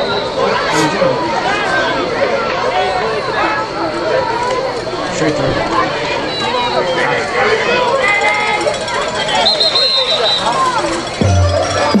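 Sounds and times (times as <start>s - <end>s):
spectators shouting and cheering: 0.0s - 12.0s.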